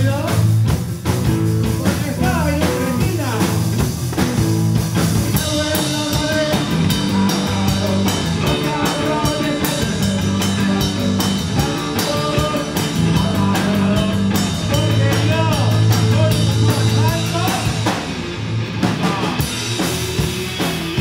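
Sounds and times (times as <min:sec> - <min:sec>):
drum kit beat: 0:00.0 - 0:21.0
electric guitars: 0:00.0 - 0:21.0
person singing: 0:05.1 - 0:18.0, 0:18.9 - 0:19.6.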